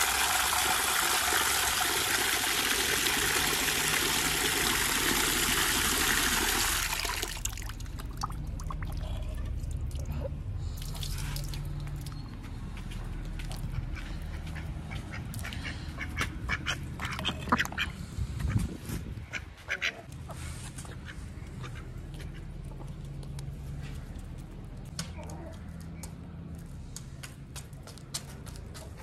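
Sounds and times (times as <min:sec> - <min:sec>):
ducks dabbling in water: 0:00.0 - 0:12.5, 0:13.2 - 0:18.0.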